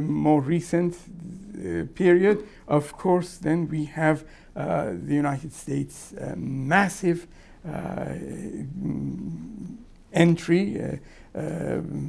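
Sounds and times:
man saying uhh: 0:01.0 - 0:02.0, 0:07.6 - 0:09.9, 0:10.7 - 0:12.0.

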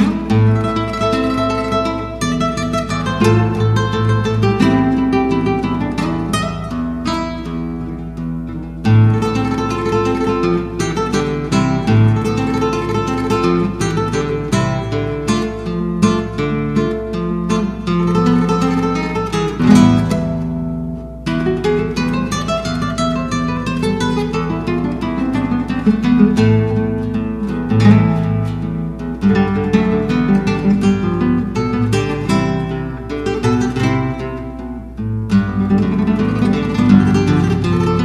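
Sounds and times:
solo classical guitar: 0:00.0 - 0:38.0.

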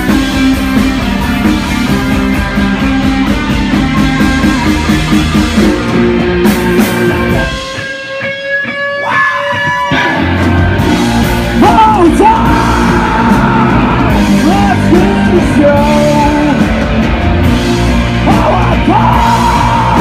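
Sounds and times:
rock band playing loud: 0:00.0 - 0:20.0
person singing and yelling: 0:11.5 - 0:16.8, 0:18.1 - 0:20.0.

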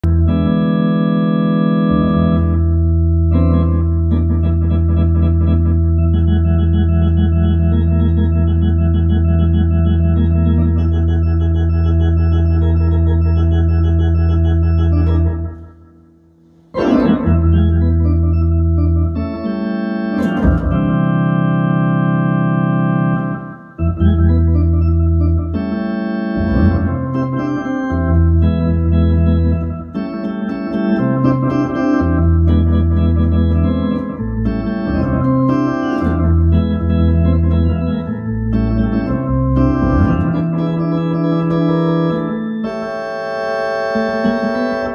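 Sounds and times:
ballpark organ chords: 0:00.0 - 0:44.9.

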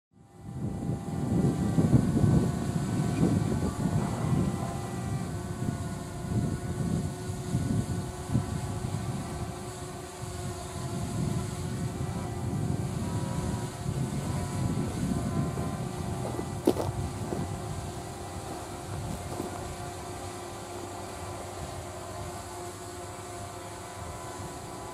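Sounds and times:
wind buffeting microphone: 0:00.2 - 0:24.9
distant electric train hum: 0:00.8 - 0:24.9.

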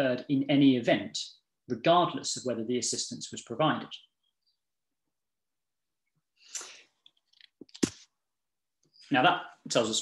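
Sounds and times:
short sharp breath: 0:06.4 - 0:07.0.

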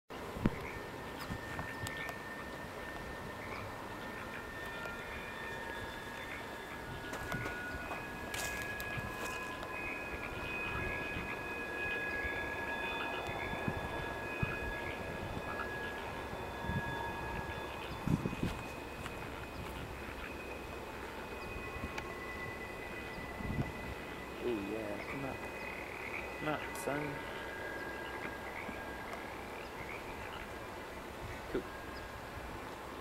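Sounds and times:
distant freight train rumble: 0:00.2 - 0:33.0
high steady squeals: 0:00.2 - 0:33.0.

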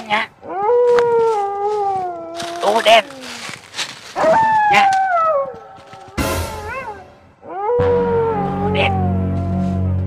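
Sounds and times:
long falling howl: 0:04.2 - 0:10.0.

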